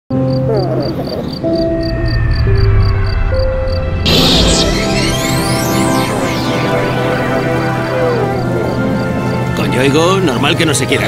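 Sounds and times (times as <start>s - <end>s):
crickets chirping: 0.2s - 4.0s, 6.6s - 9.8s
low rumbling drone: 0.8s - 9.7s
held synthesizer notes: 1.0s - 9.9s.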